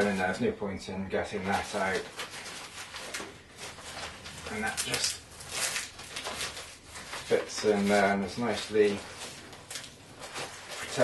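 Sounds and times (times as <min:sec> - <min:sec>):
fabric rustling: 0:01.4 - 0:11.0.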